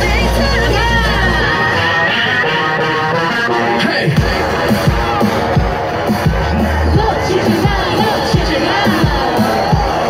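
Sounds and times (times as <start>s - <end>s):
crowd cheering and whooping: 0.0s - 10.0s
dance music over loudspeaker: 0.0s - 10.0s.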